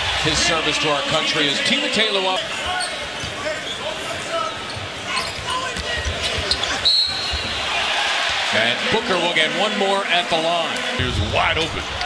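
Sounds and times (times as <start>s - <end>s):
arena crowd noise: 0.0s - 12.0s
referee's whistle: 6.5s - 7.6s.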